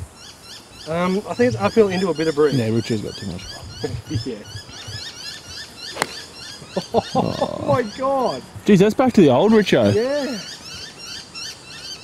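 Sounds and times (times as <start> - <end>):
birds chirping: 0.0 - 12.0
golf club striking ball: 5.9 - 6.4.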